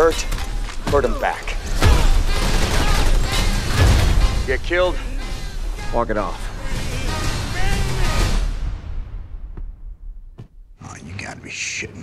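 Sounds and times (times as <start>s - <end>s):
movie gunfire and hits: 0.0s - 10.7s.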